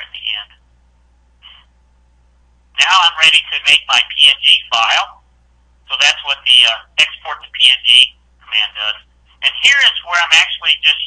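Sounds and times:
man talking over telephone: 0.0s - 0.5s, 2.8s - 5.2s, 5.9s - 11.0s
faint low hum: 0.0s - 11.0s.

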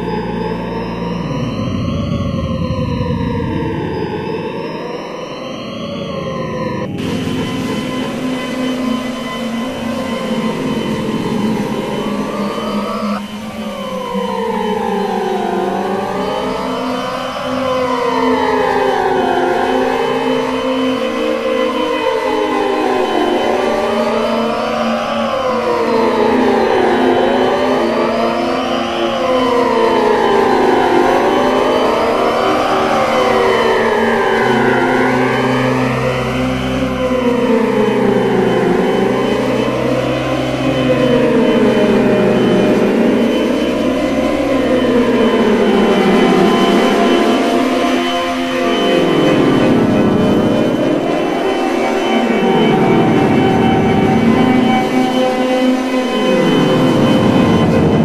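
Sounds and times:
electronic tones sliding in pitch: 0.0s - 15.5s.

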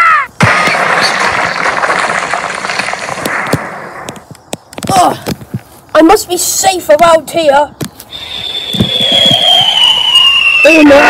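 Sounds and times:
cartoon falling whistle: 8.1s - 11.0s.

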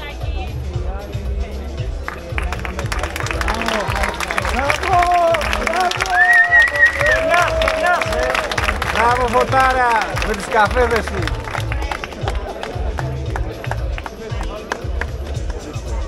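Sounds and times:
crowd voices and cheering: 0.0s - 16.0s
music with bass beat: 0.0s - 16.0s
applause: 2.0s - 15.9s.

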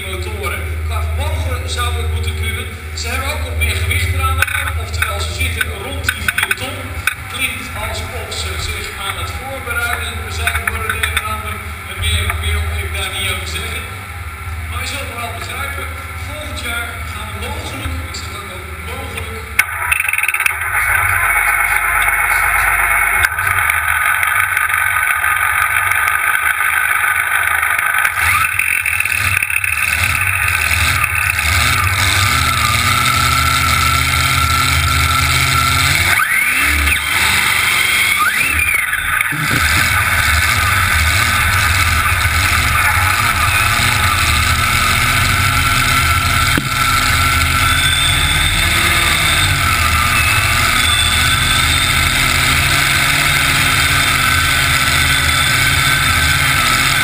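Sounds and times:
indistinct speech: 0.0s - 14.0s, 14.7s - 19.6s
loud tractor engines: 0.0s - 57.0s
rising tones: 19.6s - 57.0s.

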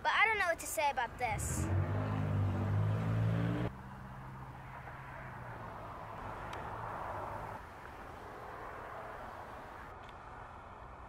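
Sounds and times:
road traffic noise: 0.0s - 11.0s
low engine hum: 1.4s - 8.6s.

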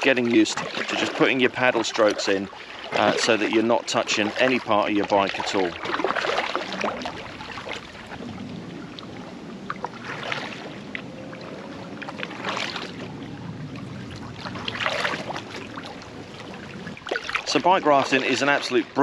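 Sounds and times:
paddle swishing through water: 0.0s - 19.0s
water wash and air noise: 0.0s - 19.0s.

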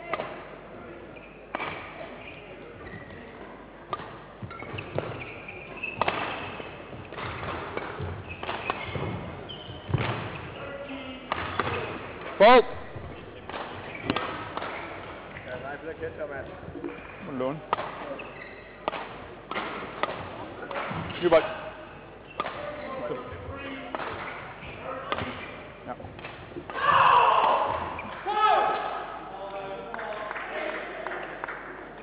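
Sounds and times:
rackets striking shuttlecock: 1.5s - 2.0s, 3.9s - 10.5s, 11.3s - 12.4s, 13.4s - 15.5s, 16.8s - 21.4s, 22.3s - 22.9s, 23.9s - 26.8s.

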